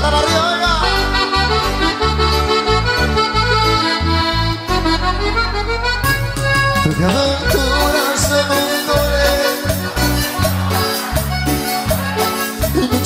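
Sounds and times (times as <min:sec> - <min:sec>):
accordion: 0:00.0 - 0:13.0
rhythmic bass line: 0:00.0 - 0:13.0.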